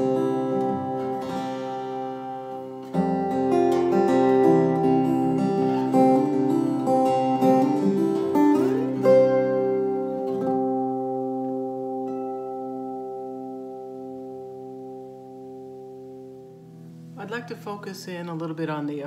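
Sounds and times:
fingerstyle acoustic guitar: 0.0s - 19.0s.

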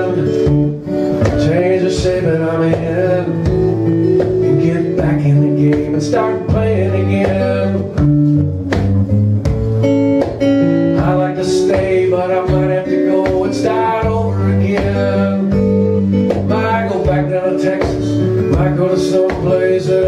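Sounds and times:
acoustic guitar playing: 0.0s - 20.0s.

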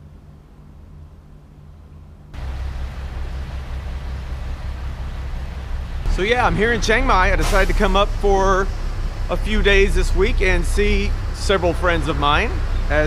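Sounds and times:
low steady hum: 0.0s - 13.0s
street noise rumble and hiss: 0.0s - 13.0s.

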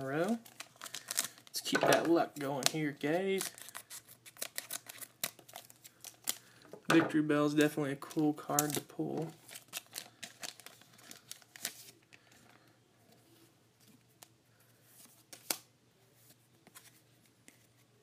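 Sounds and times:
trading cards rustling and clicking: 0.3s - 12.5s.

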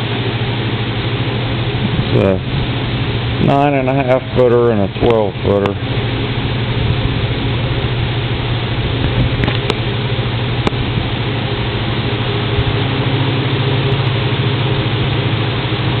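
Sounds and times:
machinery humming: 0.0s - 16.0s.

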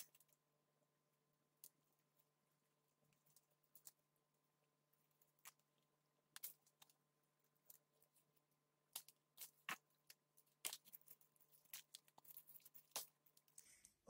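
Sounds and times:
soil and roots crackling: 5.2s - 13.8s.

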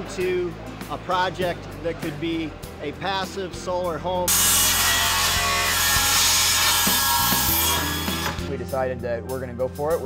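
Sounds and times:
table saw cutting board: 4.3s - 8.5s.

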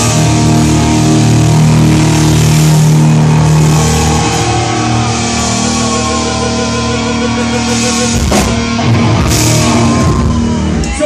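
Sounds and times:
punk band playing live: 0.0s - 11.0s.

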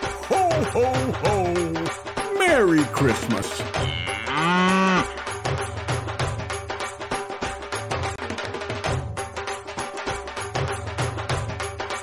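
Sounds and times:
background music with steady beat: 0.0s - 12.0s
cow mooing: 3.8s - 5.2s.

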